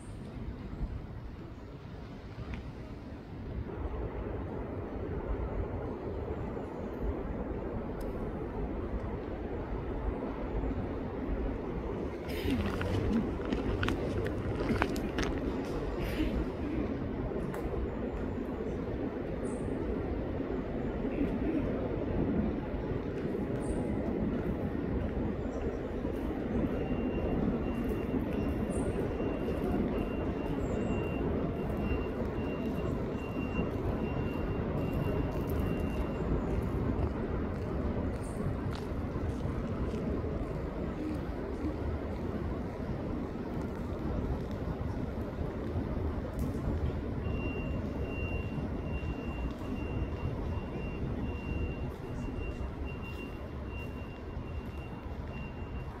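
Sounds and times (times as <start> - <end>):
low background rumble: 0.0 - 56.0.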